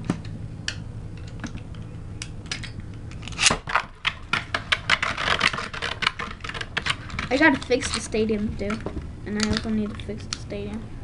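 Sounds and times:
spinning top rattling: 4.1 - 10.4.

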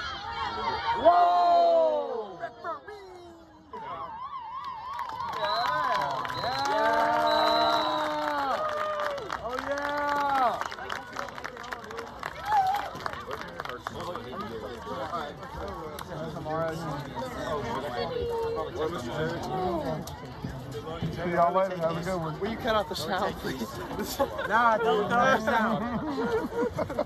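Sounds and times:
spectators cheering: 3.8 - 13.4
warbling whistle: 5.3 - 8.1.

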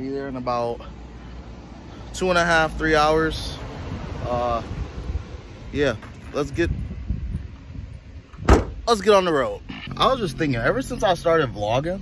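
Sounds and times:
liftgate slamming shut: 8.4 - 8.8.

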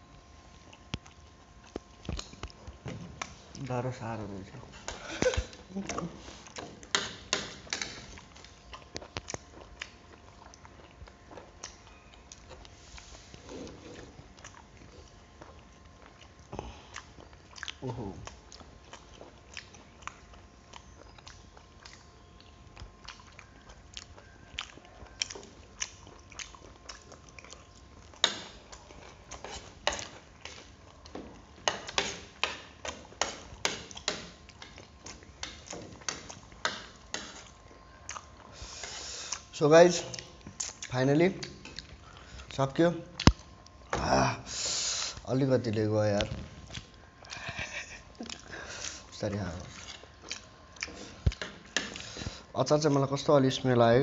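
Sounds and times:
person chewing: 0.0 - 3.7, 4.8 - 53.0.

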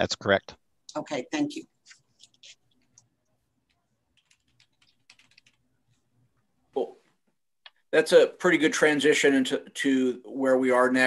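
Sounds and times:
typing on computer keyboard: 4.1 - 5.7.

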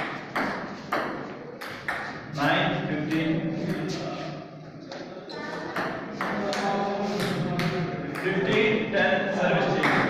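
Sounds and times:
people talking: 2.4 - 10.0.

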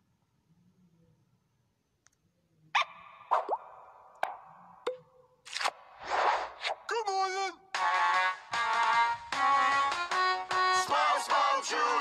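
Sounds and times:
cartoon pops: 2.8 - 6.8.

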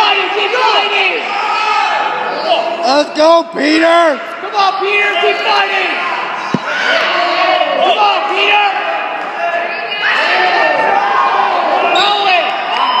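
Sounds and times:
people shouting and yelling: 0.0 - 13.0.

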